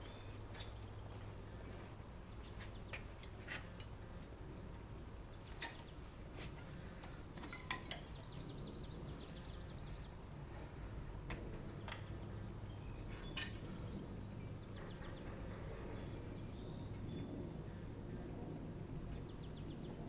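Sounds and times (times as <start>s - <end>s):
low outdoor background noise: 0.0s - 20.0s.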